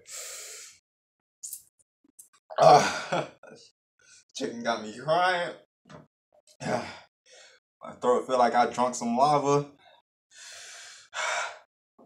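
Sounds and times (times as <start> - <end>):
man breathing hard: 0.0 - 0.8, 10.3 - 11.7.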